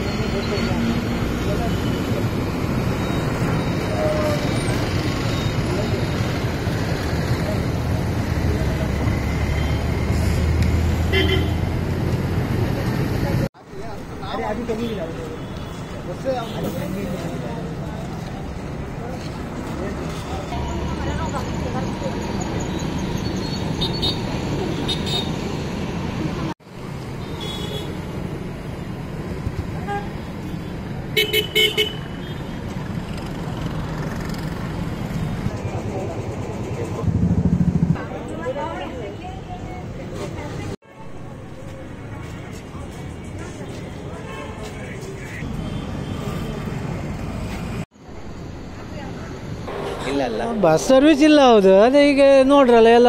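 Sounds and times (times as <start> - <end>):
traffic rumble: 0.0 - 53.0
vehicle horn tooting: 11.1 - 11.6
people talking: 48.8 - 53.0.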